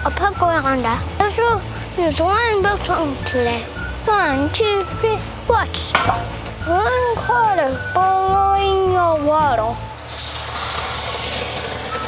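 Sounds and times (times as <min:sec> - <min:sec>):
boiling water pouring with hiss: 0:09.9 - 0:12.0.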